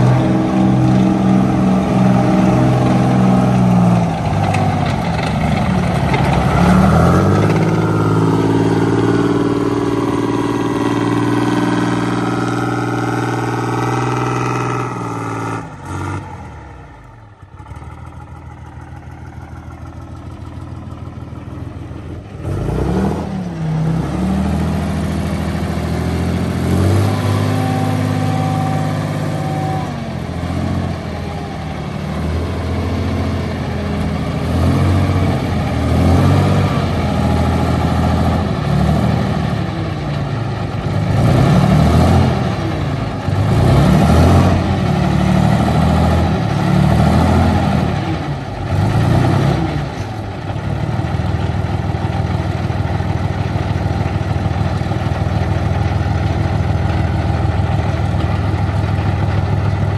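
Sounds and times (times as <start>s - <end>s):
tracked vehicle engine revving: 0.0s - 59.9s.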